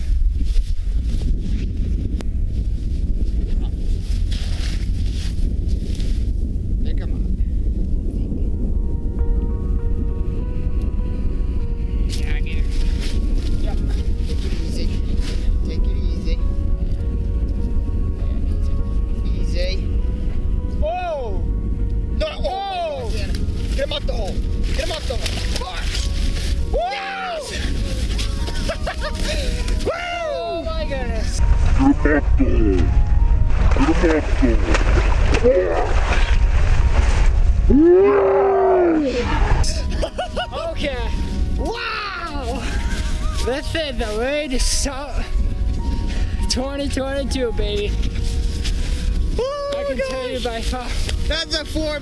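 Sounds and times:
wind buffeting microphone: 0:00.0 - 0:52.0
footsteps crunching on snow: 0:02.6 - 0:06.3, 0:12.6 - 0:15.6, 0:23.1 - 0:30.0, 0:42.4 - 0:44.4, 0:47.8 - 0:51.6
background music: 0:06.4 - 0:52.0
excited whoops and yells: 0:26.7 - 0:28.0, 0:29.8 - 0:30.7, 0:41.6 - 0:43.4, 0:49.4 - 0:50.3.

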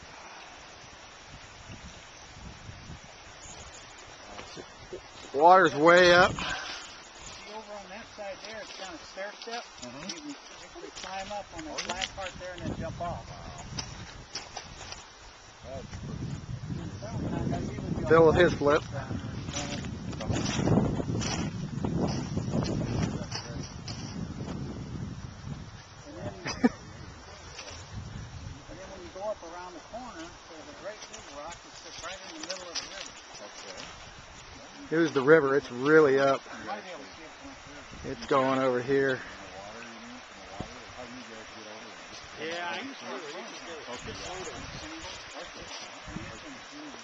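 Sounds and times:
creek water rushing: 0:00.0 - 0:47.0
wind buffeting microphone: 0:00.9 - 0:07.3, 0:11.4 - 0:30.4, 0:37.5 - 0:39.8, 0:43.9 - 0:46.7.

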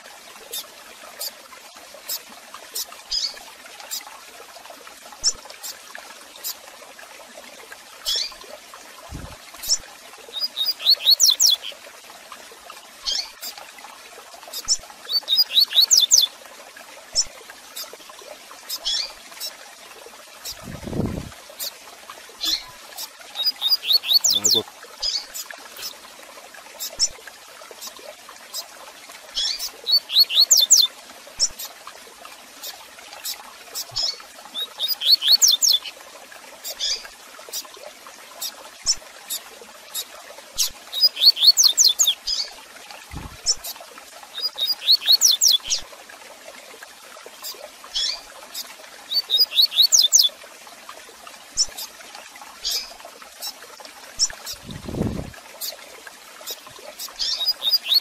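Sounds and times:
bird singing rapid high notes: 0:23.4 - 0:25.2.

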